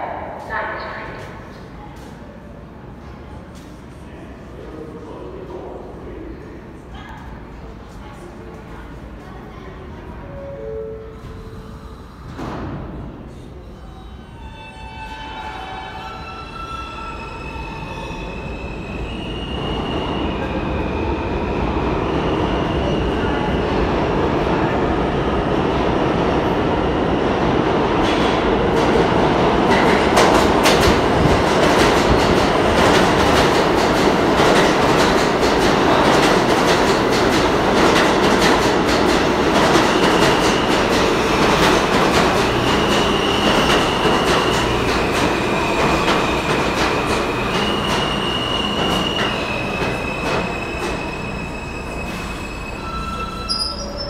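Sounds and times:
subway train rumbling: 0.0 - 54.0
high wheel squeals: 47.3 - 54.0.

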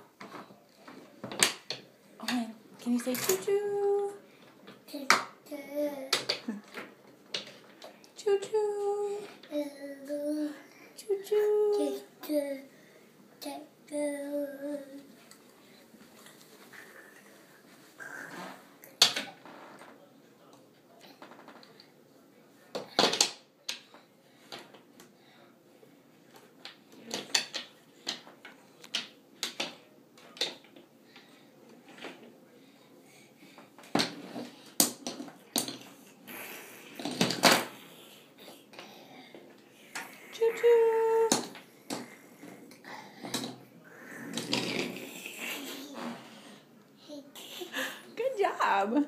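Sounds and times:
toy cars knocking and clacking: 1.2 - 2.4, 4.7 - 7.9, 22.7 - 24.8, 26.6 - 30.9, 33.8 - 36.0, 37.0 - 37.9, 41.2 - 42.6, 43.2 - 43.6
toy trains knocking and scraping on wood: 26.7 - 29.8.

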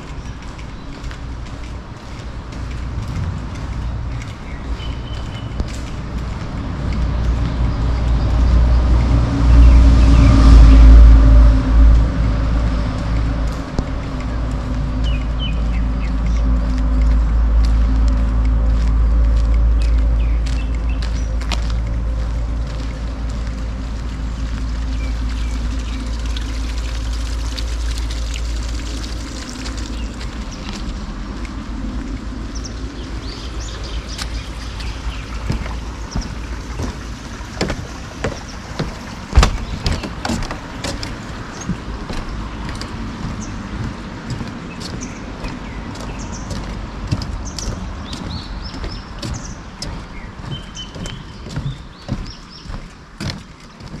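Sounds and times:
small birds chirping: 0.0 - 10.7, 13.2 - 54.0
footsteps on wooden boardwalk: 0.0 - 54.0
steady low rumble: 0.0 - 54.0.

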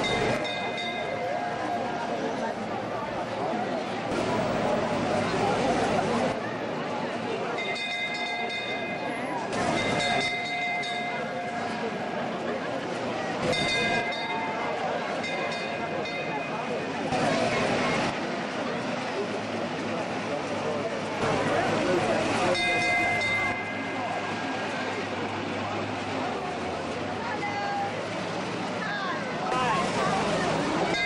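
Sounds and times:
fire engine bell ringing: 0.0 - 1.9, 7.4 - 12.3, 13.4 - 18.1, 21.2 - 25.4, 30.8 - 31.0
crowd noise: 0.0 - 31.0.

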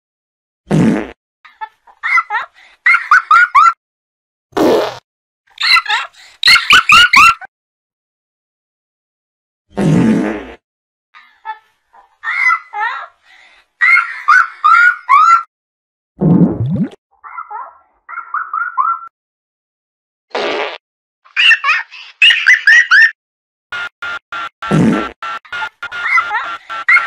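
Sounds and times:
cartoon fart sound effect: 0.7 - 1.2, 4.6 - 5.0, 9.7 - 10.6, 16.2 - 17.0, 20.3 - 20.8, 24.4 - 27.0
cartoon character giggling: 5.6 - 7.5, 17.3 - 19.1, 21.3 - 23.2, 25.5 - 27.0.

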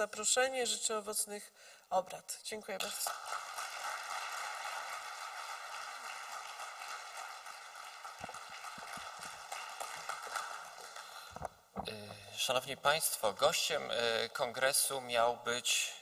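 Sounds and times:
audience applauding: 3.0 - 11.3.

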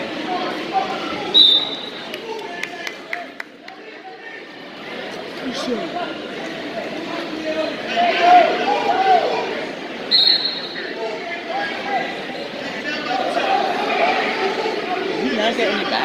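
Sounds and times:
spectators talking and calling out: 0.0 - 16.0.

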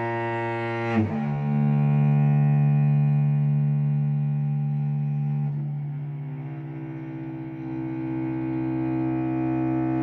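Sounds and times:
cello playing sustained bowed note: 0.0 - 10.0.

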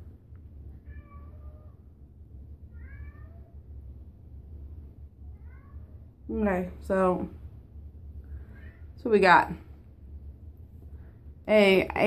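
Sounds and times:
low steady hum: 0.0 - 12.0
cat meowing: 0.8 - 1.8, 2.7 - 3.6, 5.3 - 6.0.

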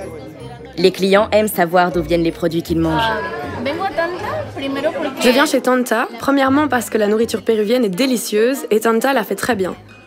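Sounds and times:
restaurant diners chatter: 0.0 - 10.0.

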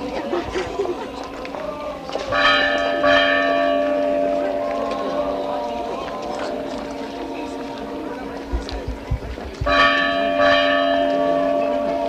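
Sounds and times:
crowd murmuring: 0.0 - 12.0
church bell tolling: 2.1 - 8.9, 9.6 - 12.0.

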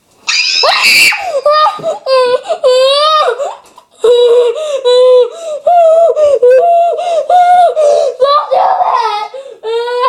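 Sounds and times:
child screaming: 0.3 - 1.8, 8.2 - 10.0.

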